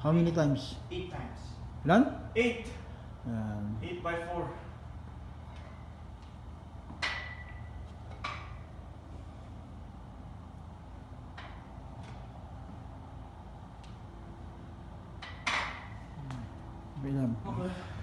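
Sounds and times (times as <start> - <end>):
steady low hum: 0.0 - 18.0
barbell plates clinking: 6.9 - 8.7.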